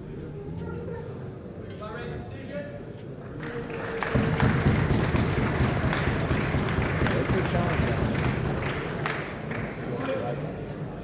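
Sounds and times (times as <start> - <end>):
spectators applauding: 3.3 - 10.1.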